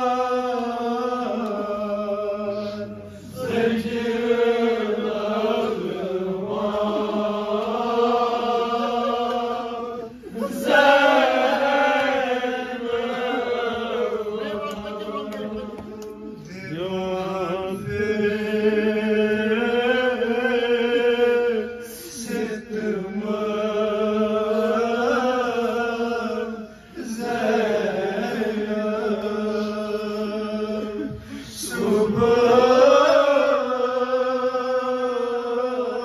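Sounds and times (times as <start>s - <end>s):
men chanting a lament: 0.0s - 36.0s.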